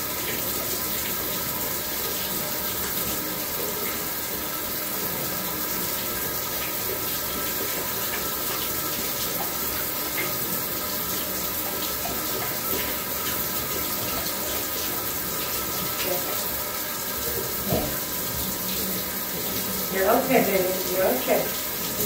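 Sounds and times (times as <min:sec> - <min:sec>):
shower sprayer water rushing: 0:00.0 - 0:22.0.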